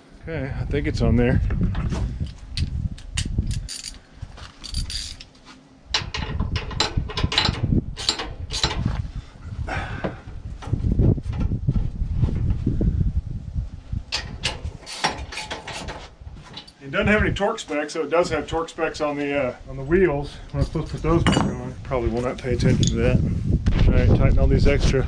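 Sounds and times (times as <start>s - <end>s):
low rumbling handling noise: 0.6s - 17.4s, 18.2s - 25.0s
hand tools clanking on metal: 3.5s - 4.0s, 6.0s - 8.8s, 14.1s - 16.8s.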